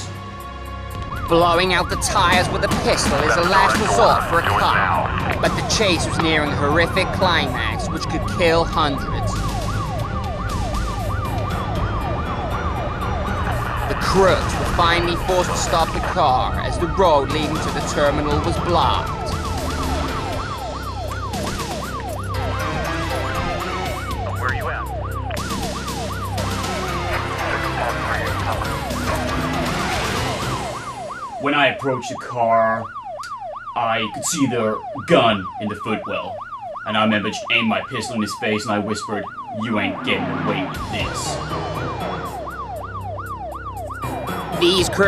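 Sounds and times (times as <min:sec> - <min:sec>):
police siren yelping: 0:00.0 - 0:45.0.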